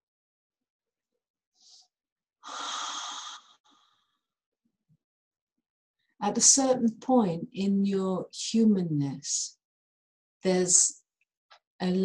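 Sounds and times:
woman breathing: 1.6 - 4.2.

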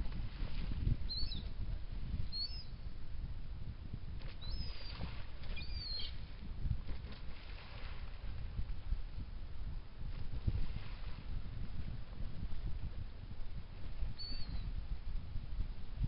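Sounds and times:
wind rumbling on microphone: 0.0 - 16.0
seabird calls: 1.1 - 1.4, 2.3 - 2.7, 4.4 - 6.2, 14.1 - 14.6.

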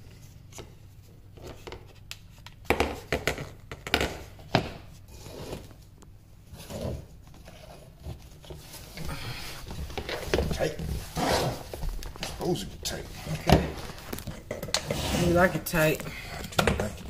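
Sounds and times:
wood scraping on wood: 6.5 - 16.0.

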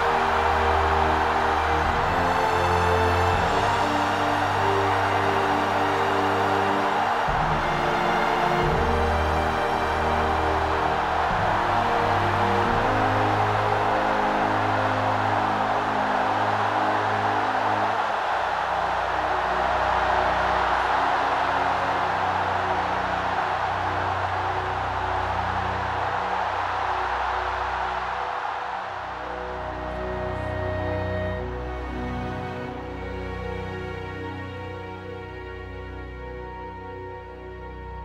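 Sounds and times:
roar of crowd voices: 0.0 - 33.3
slow soundtrack music: 0.0 - 38.0.

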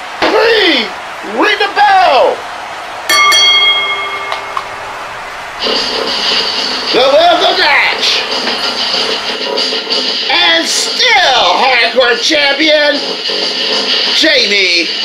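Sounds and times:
ring bell struck: 3.1 - 5.0.

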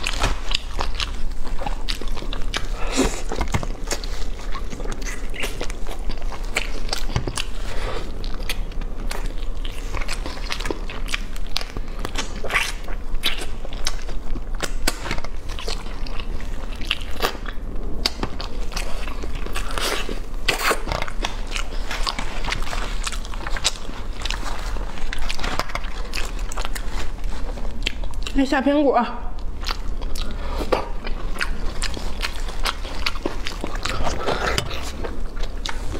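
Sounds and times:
chewing and crunching: 0.0 - 35.9
low steady hum: 0.0 - 35.9.

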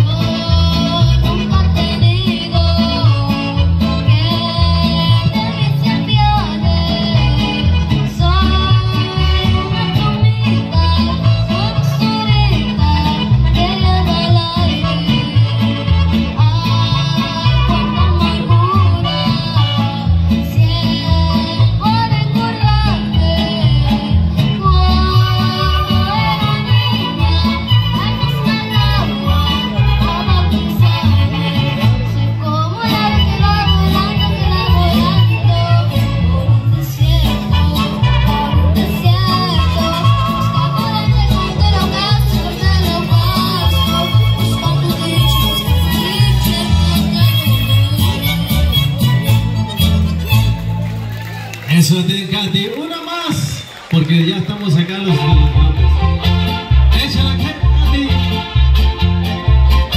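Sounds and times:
girl singing into a microphone: 0.0 - 15.5, 16.4 - 48.5
backing track with steady beat: 0.0 - 52.8, 54.5 - 59.9.

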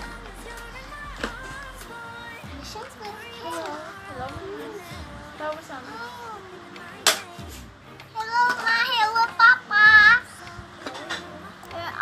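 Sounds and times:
toddler girl singing: 0.0 - 12.0.

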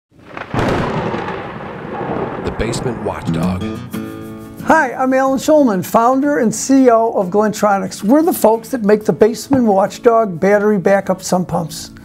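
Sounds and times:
rain: 0.1 - 3.5
thunder rumbling and cracking: 0.1 - 3.8.

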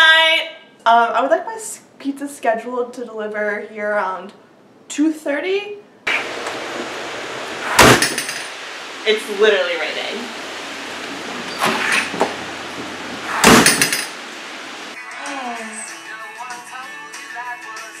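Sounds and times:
front door slamming: 7.7 - 8.3, 11.0 - 14.8
music with singing voice: 15.0 - 18.0.

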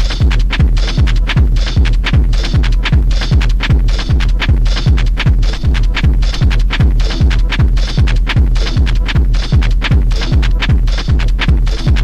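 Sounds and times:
fast techno music: 0.0 - 12.0
kick drum dropping in pitch: 0.0 - 12.0
off-beat hi-hats: 0.0 - 12.0
steady low bass: 0.0 - 12.0.

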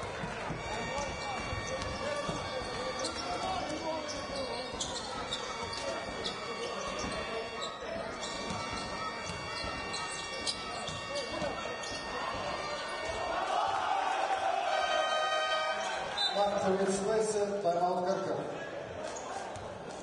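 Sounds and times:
murmur of voices echoing: 0.0 - 20.0
basketball bouncing on hardwood: 8.3 - 11.6.

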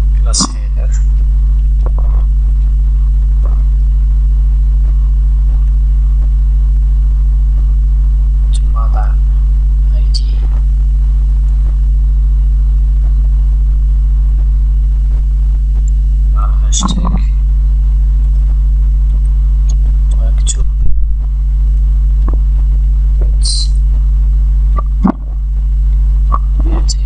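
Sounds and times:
low electrical mains hum: 0.0 - 27.0.

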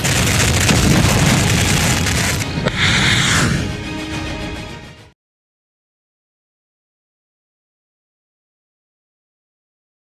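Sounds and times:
sharp crack: 0.0 - 3.7
missile blast rushing boom: 0.0 - 3.9
background music: 0.7 - 5.2
short hissing burst: 1.7 - 3.8.

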